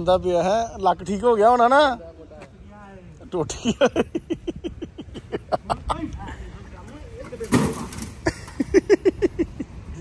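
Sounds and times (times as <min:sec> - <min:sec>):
paving stones crashing down: 0:07.4 - 0:08.2.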